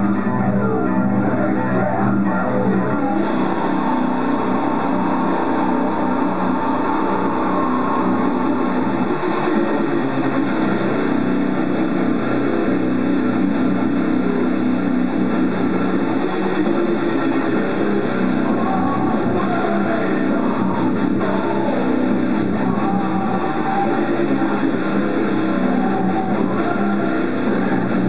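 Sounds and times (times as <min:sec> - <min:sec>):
distorted electric guitar riff: 0:00.0 - 0:28.0.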